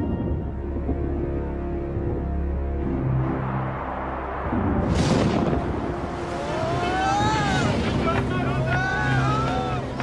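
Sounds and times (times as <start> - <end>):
wind: 0.0 - 10.0
rushing water: 3.3 - 10.0
churning waves: 3.8 - 10.0.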